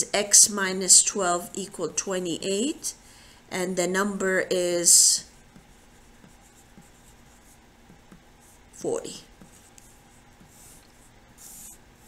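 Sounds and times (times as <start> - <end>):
pencil scratching on paper: 5.4 - 12.0.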